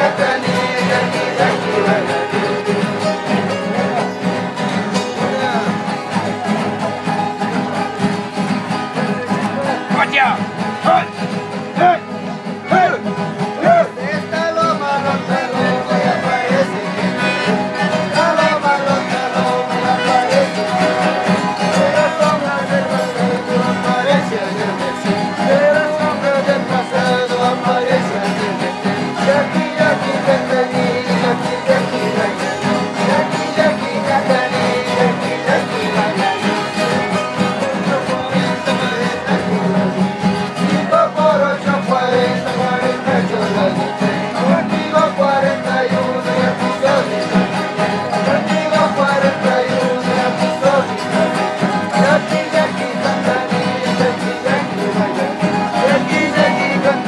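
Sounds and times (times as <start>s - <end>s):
strummed guitars: 0.0s - 57.0s.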